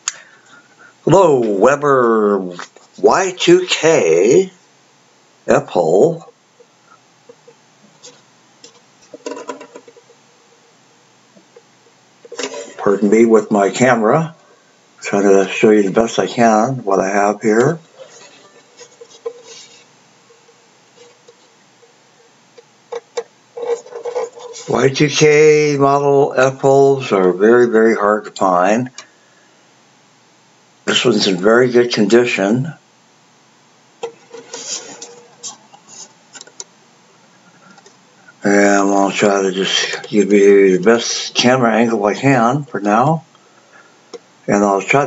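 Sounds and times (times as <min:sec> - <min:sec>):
faint room hiss: 0:00.0 - 0:45.0
mandolin handling clicks and knocks: 0:08.0 - 0:10.1, 0:36.4 - 0:36.7.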